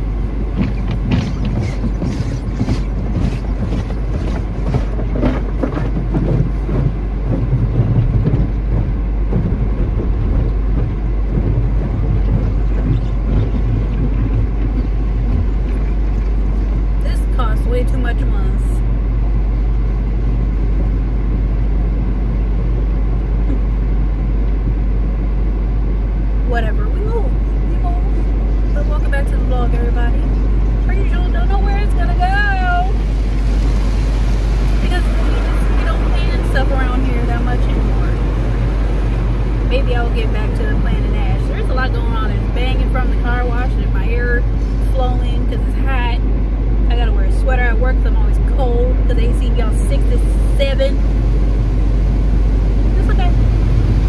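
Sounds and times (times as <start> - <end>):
car engine idling: 0.0 - 54.0
woman talking: 17.0 - 18.8, 26.4 - 33.0, 34.8 - 38.4, 39.7 - 46.3, 46.9 - 51.1, 52.9 - 53.5.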